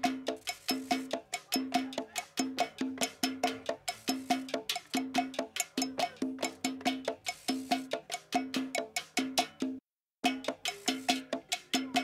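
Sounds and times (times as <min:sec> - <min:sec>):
cowbell struck rapidly: 0:00.0 - 0:12.0.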